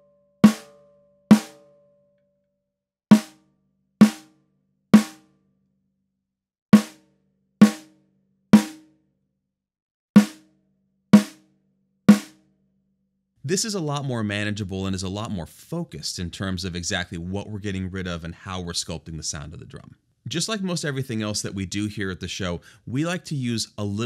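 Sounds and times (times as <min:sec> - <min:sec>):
snare drum hits: 0:10.2 - 0:10.4, 0:11.2 - 0:11.4, 0:12.1 - 0:12.4.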